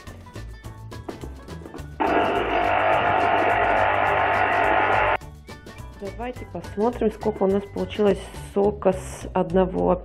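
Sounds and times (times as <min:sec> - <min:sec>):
background music: 0:00.0 - 0:10.0
electric juicer motor whirring: 0:02.0 - 0:05.2.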